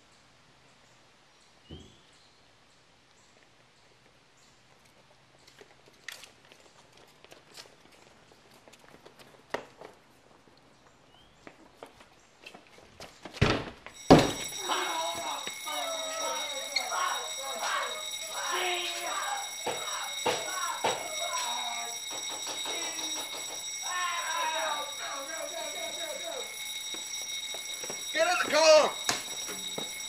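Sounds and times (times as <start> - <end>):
loud bangs: 14.0 - 26.6.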